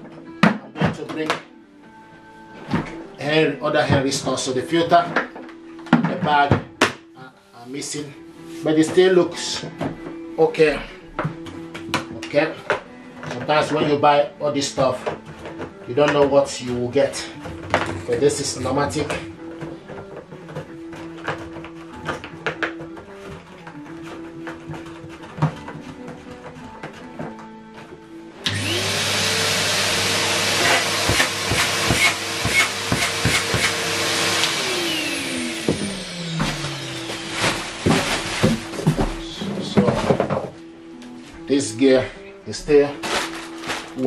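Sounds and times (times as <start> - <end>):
background music: 0.0 - 44.0
vacuum cleaner motor whining: 28.4 - 39.9.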